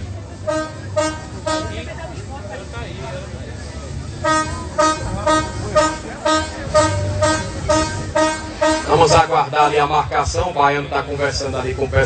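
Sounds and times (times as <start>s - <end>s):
horn tooting short blasts: 0.4s - 1.9s, 4.2s - 9.3s.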